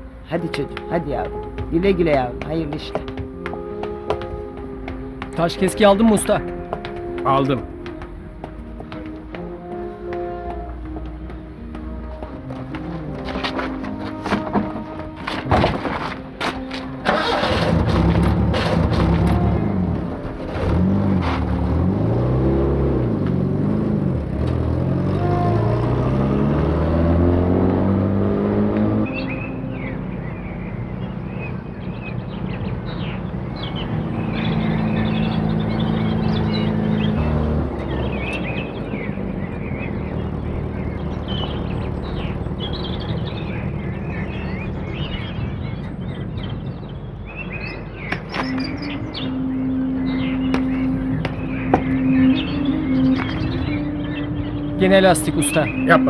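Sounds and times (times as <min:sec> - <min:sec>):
background music: 0:00.0 - 0:56.0.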